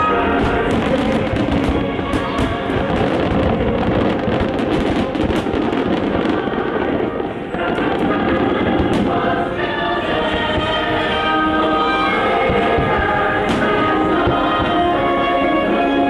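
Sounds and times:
fireworks bursting and crackling: 0:00.0 - 0:16.0
music soundtrack: 0:00.0 - 0:16.0.

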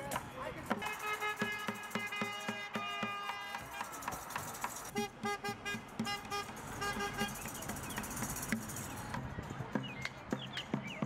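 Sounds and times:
vehicle horn short blasts: 0:00.8 - 0:04.1, 0:04.9 - 0:07.6.

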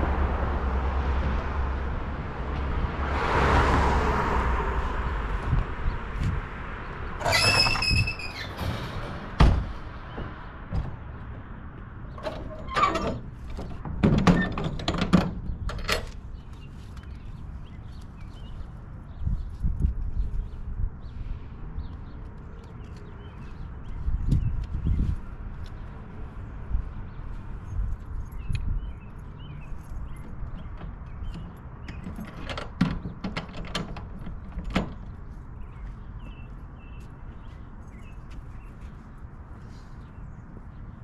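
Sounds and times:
trailer door swinging shut: 0:07.2 - 0:11.0, 0:12.1 - 0:16.1, 0:30.2 - 0:35.1
metal latch clicking and rattling: 0:12.1 - 0:16.2, 0:30.2 - 0:35.1
small birds chirping: 0:15.4 - 0:32.3, 0:35.0 - 0:41.0.

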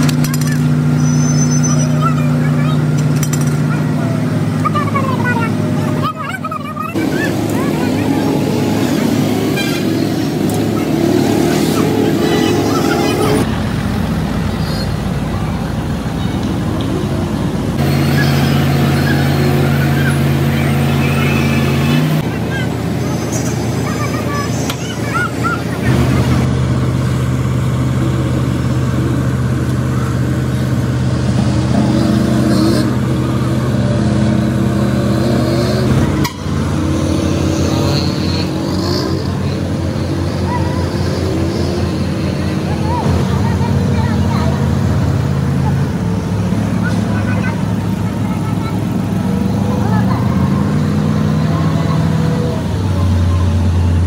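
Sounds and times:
heavy machinery engines humming: 0:00.0 - 0:54.0
traffic: 0:00.0 - 0:54.0
voices: 0:00.0 - 0:54.0.

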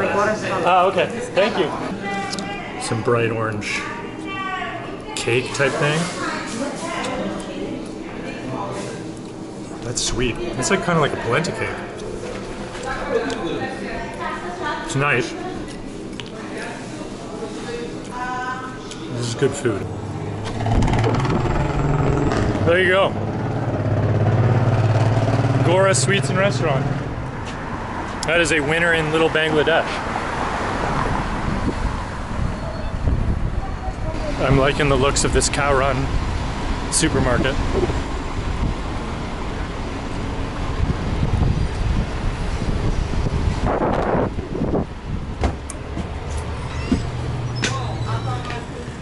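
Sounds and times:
road noise: 0:00.0 - 0:49.0
traffic rumble: 0:00.0 - 0:49.0
vehicle engine running: 0:19.6 - 0:27.8
short rushing noise: 0:20.4 - 0:22.7.

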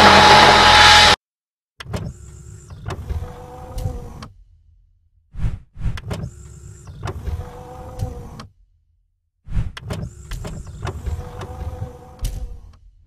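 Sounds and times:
sharp hit: 0:00.0 - 0:01.2
whirring clicking mechanical slide: 0:05.9 - 0:08.5, 0:09.7 - 0:12.9.

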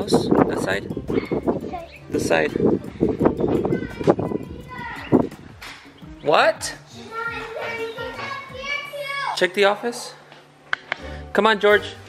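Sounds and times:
children calling out: 0:03.5 - 0:05.3, 0:07.0 - 0:09.4.

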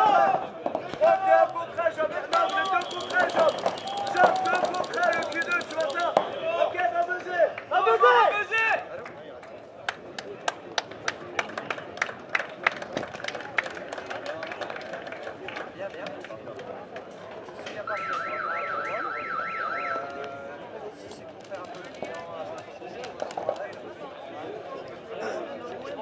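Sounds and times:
people shouting: 0:00.0 - 0:00.4, 0:02.5 - 0:05.6.

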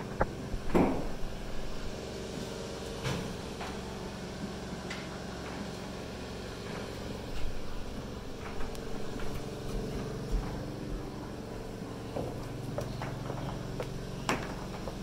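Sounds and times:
low mechanical hum: 0:00.0 - 0:15.0
footsteps on wooden subfloor: 0:06.8 - 0:15.0.

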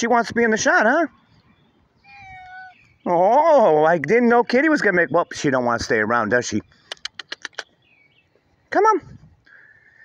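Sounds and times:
cat meowing: 0:02.0 - 0:02.9.

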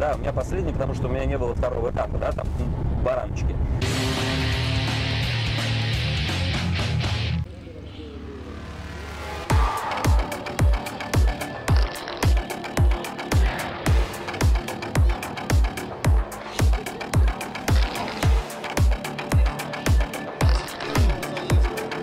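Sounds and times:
background music with kick drum: 0:09.5 - 0:22.0.

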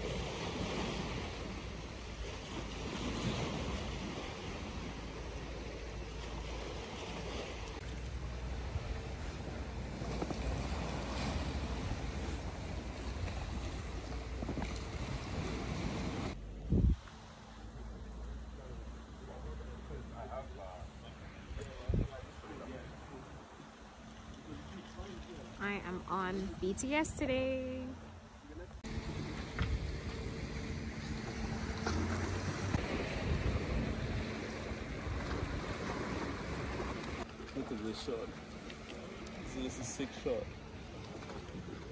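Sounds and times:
sea waves washing: 0:00.0 - 0:41.9
wind buffeting microphone: 0:07.6 - 0:17.1, 0:21.5 - 0:22.5, 0:28.8 - 0:37.3.

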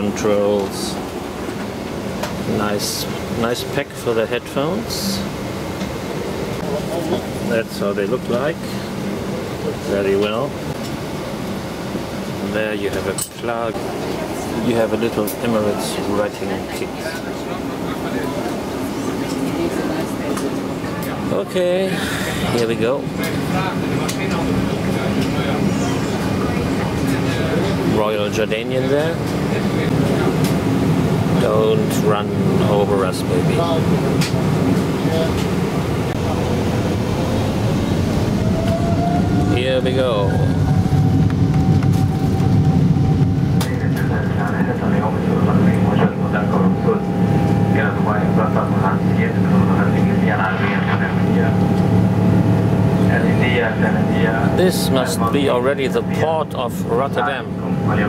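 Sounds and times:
low hum of engines and air conditioning: 0:00.0 - 0:58.0
faint voices: 0:43.1 - 0:58.0.

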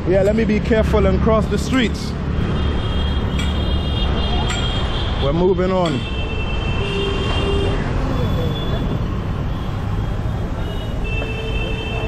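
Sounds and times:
rumble of traffic: 0:00.0 - 0:12.0.

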